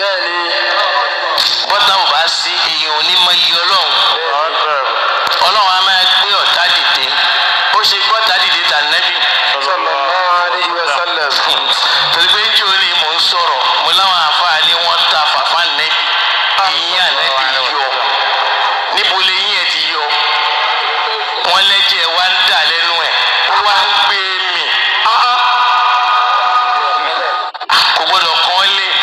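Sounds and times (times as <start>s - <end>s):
tinny speech: 0.0s - 29.0s.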